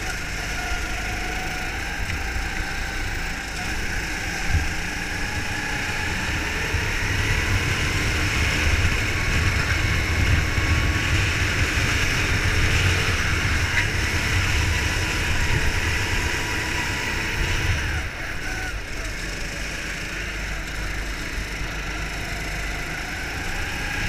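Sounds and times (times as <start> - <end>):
go-kart engine drone: 0.0 - 24.0.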